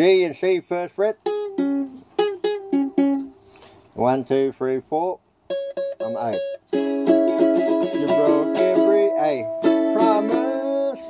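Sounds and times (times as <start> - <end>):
ukulele strummed: 0.8 - 3.4, 5.5 - 11.0.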